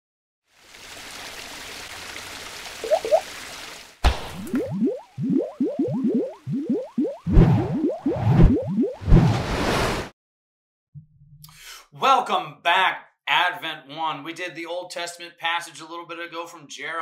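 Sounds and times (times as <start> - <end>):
liquid drip-like bloops: 2.8 - 3.4, 4.0 - 9.0
heavy splat hits: 4.0 - 4.6.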